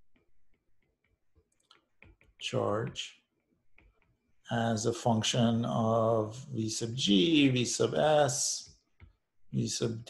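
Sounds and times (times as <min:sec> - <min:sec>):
stylus tapping glass screen: 0:00.2 - 0:04.4.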